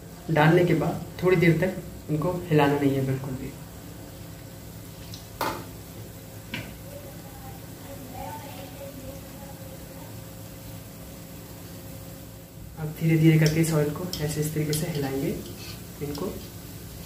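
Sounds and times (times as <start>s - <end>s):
oil sizzling and bubbling: 0.0s - 17.0s.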